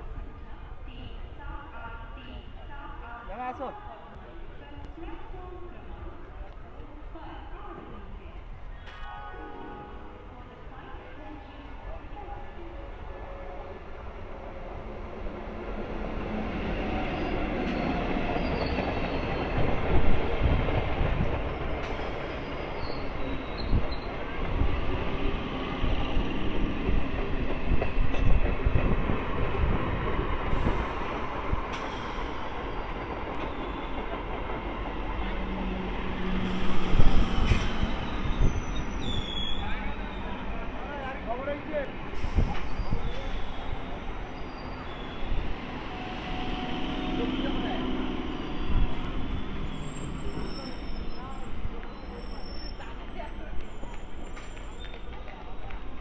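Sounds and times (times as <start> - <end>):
train passing at speed: 0.0 - 56.0.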